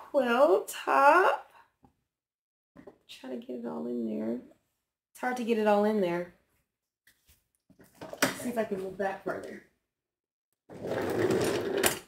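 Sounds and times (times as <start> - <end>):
office chair rolling on casters: 10.7 - 12.0.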